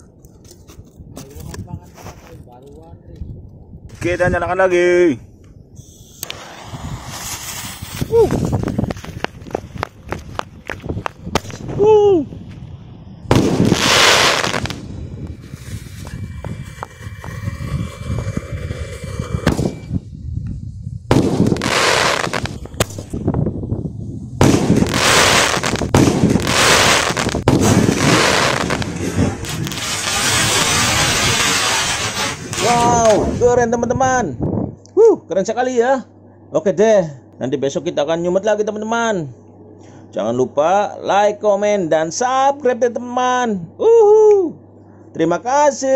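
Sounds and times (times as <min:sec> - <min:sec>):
firework launches and bursts: 0:05.8 - 0:09.5, 0:13.2 - 0:20.1, 0:21.1 - 0:23.2, 0:24.4 - 0:33.4
firework crackling: 0:05.8 - 0:11.8, 0:13.3 - 0:20.0, 0:21.1 - 0:23.2, 0:24.4 - 0:33.4.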